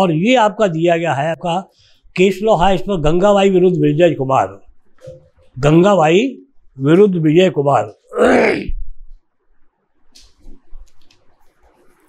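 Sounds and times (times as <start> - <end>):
man's wordless vocal sound: 8.0 - 8.8.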